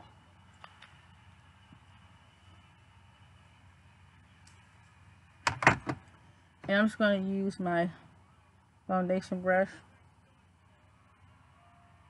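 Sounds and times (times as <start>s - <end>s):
faint clicks: 4.4s - 5.0s.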